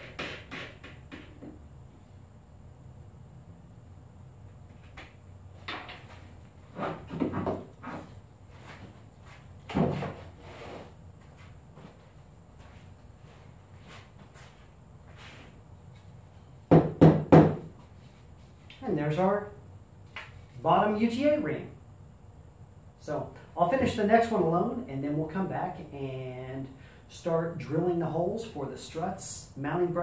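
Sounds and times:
wooden knocks on workbench: 0:16.7 - 0:17.7.

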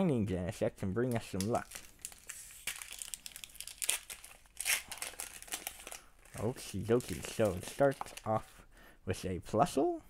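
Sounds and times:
foil wrapper crinkling and tearing: 0:01.3 - 0:08.4.

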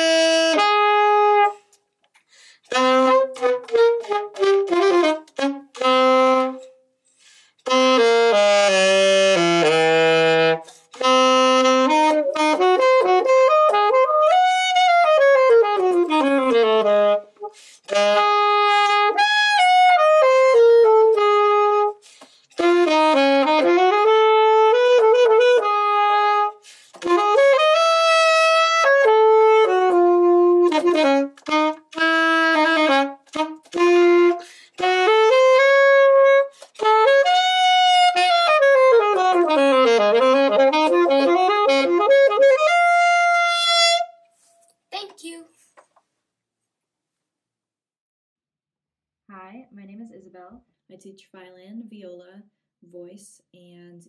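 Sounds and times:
alto saxophone solo melody: 0:00.0 - 0:01.7, 0:02.6 - 0:44.3.

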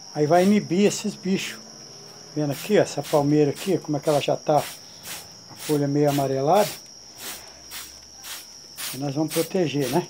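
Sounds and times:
night insects trilling: 0:00.0 - 0:10.0
hand sprayer hissing squirts: 0:02.5 - 0:10.0.

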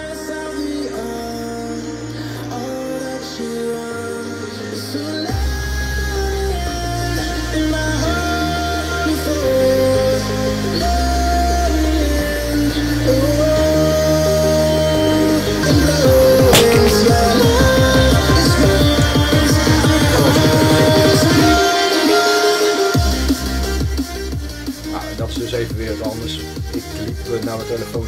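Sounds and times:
slow melodic music from speakers: 0:00.0 - 0:28.0
deep bass notes: 0:15.9 - 0:19.3.

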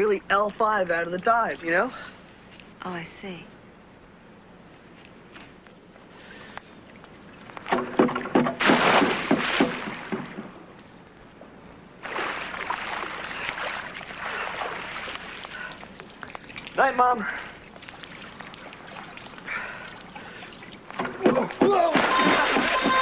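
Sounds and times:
water sloshing: 0:06.7 - 0:10.8, 0:11.9 - 0:23.0
springboard rattling: 0:07.7 - 0:10.6
loud splash into pool: 0:08.0 - 0:10.4, 0:12.0 - 0:15.3, 0:21.3 - 0:23.0.

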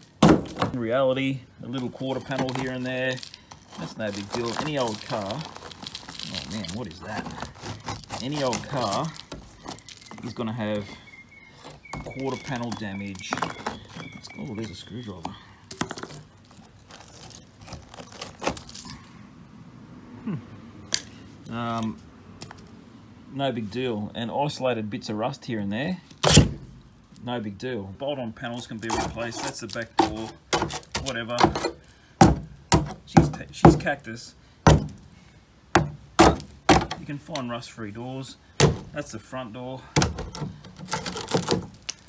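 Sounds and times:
rusted metal crackling and tearing: 0:00.0 - 0:19.2, 0:28.4 - 0:37.7, 0:39.9 - 0:42.0
flaking rust snapping: 0:01.7 - 0:10.9, 0:11.6 - 0:19.1, 0:28.6 - 0:34.0, 0:40.0 - 0:42.0.

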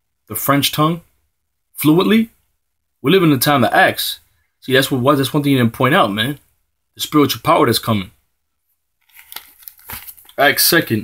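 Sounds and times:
book pages rustling: 0:09.0 - 0:10.8.

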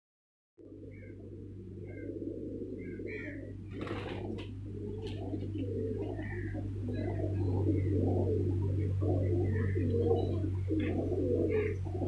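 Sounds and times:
pigeons cooing: 0:00.6 - 0:12.0
steady low hum: 0:00.6 - 0:12.0.

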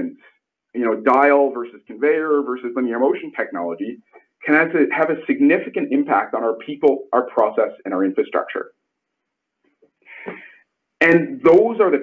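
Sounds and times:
faint breath drawn in: 0:10.0 - 0:10.7.

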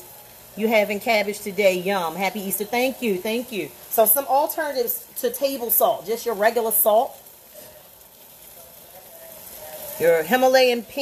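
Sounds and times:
cabbage sizzling in a pan: 0:00.0 - 0:11.0.

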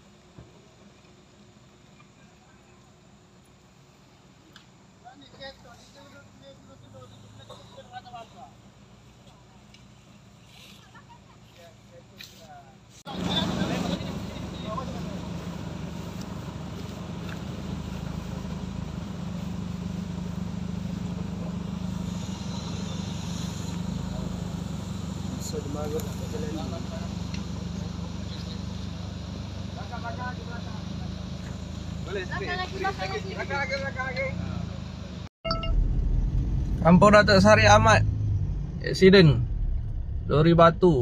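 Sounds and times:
low engine rumble: 0:00.0 - 0:41.0.

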